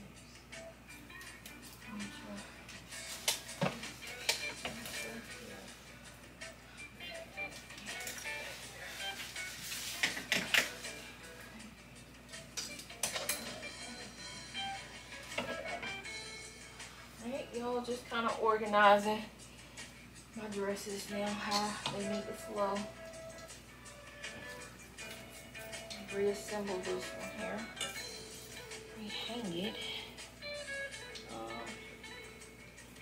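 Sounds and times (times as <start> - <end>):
soft background music: 0.0 - 33.0.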